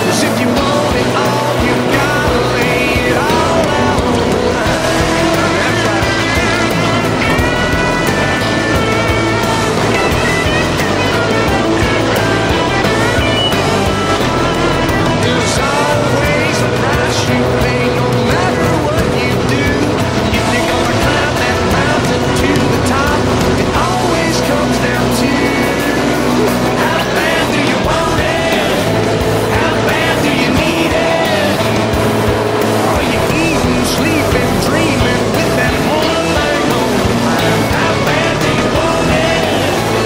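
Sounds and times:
music playing: 0:00.0 - 0:40.0
race car engines at speed: 0:00.0 - 0:40.0.

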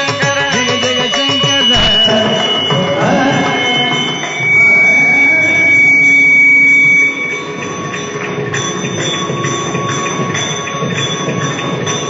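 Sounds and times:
musical accompaniment: 0:00.0 - 0:12.0
faint drone: 0:01.7 - 0:10.9.

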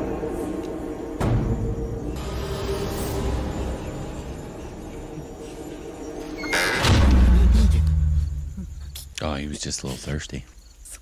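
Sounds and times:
low quiet horror music: 0:00.0 - 0:10.2.

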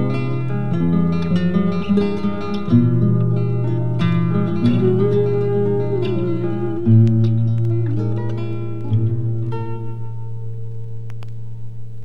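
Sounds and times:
acoustic guitar chord ringing: 0:00.0 - 0:11.9
record surface clicks: 0:06.9 - 0:09.9, 0:10.6 - 0:11.6.

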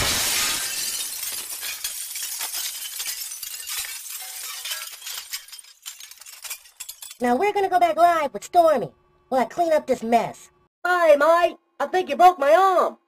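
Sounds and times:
falling glass shards clinking: 0:00.0 - 0:07.2
glass smash: 0:00.0 - 0:07.2.

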